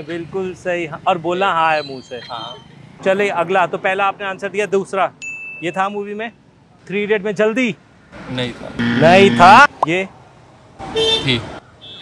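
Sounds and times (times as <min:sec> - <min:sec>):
people talking: 0:08.8 - 0:10.1.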